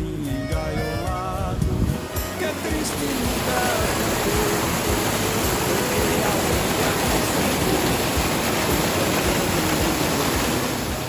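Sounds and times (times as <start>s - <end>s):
water rushing over rocks: 1.5s - 11.0s.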